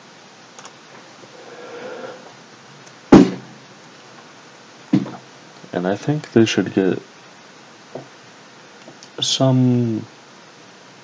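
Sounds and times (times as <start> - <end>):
sharp loud thump: 3.1 - 3.6.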